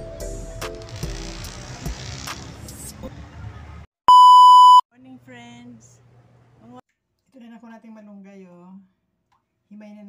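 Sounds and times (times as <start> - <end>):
test-tone beep: 4.1 - 4.8.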